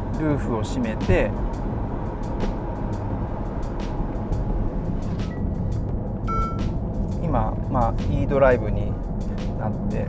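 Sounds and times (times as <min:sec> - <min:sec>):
road and drivetrain rumble: 0:00.0 - 0:10.0
short beep: 0:06.3 - 0:06.6.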